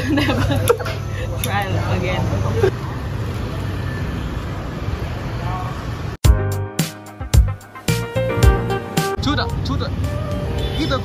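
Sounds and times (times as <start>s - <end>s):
laughter: 0.0s - 1.0s.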